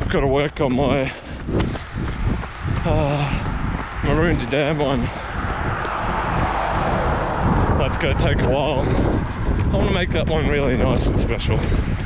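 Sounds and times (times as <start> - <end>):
car driving past: 2.2 - 9.5.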